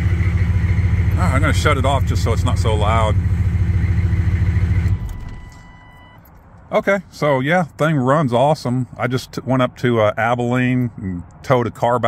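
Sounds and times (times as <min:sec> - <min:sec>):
diesel engine idling: 0:00.0 - 0:06.0.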